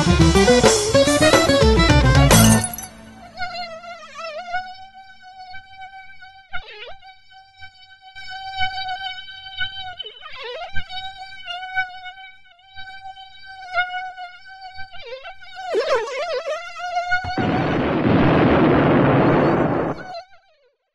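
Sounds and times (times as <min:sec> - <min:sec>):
mosquito whine: 0:03.0 - 0:20.3
loud hiss: 0:17.4 - 0:20.0.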